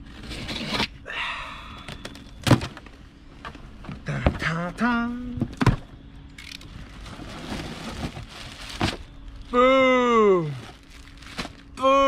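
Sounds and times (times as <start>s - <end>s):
cardboard and plastic rustling: 5.3s - 9.6s, 10.4s - 11.8s
man exclaiming: 9.5s - 10.6s, 11.8s - 12.0s.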